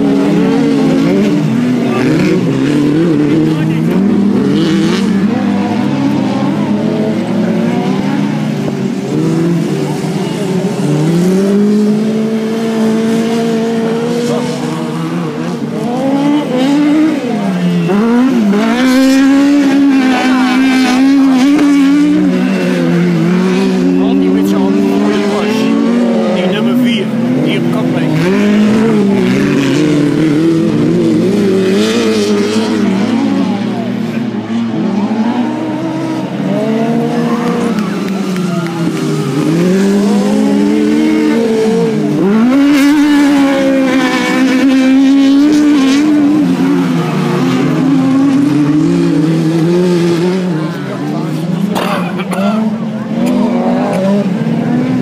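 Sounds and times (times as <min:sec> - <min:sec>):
buggy engines racing: 0:00.0 - 0:55.0.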